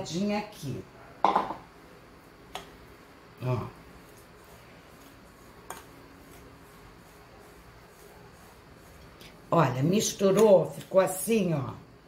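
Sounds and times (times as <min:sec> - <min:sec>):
fork stirring in glass bowl: 0:03.9 - 0:11.1.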